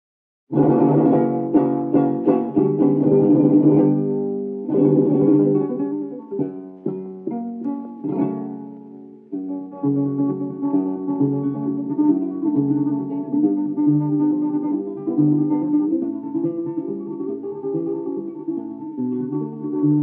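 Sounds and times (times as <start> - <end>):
flamenco guitar playing: 0.5 - 20.0.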